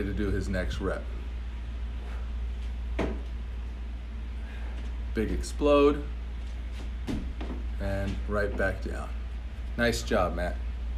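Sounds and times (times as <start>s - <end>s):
steady low hum: 0.0s - 10.9s
foot landing on rubber floor: 2.9s - 3.4s, 6.7s - 8.7s.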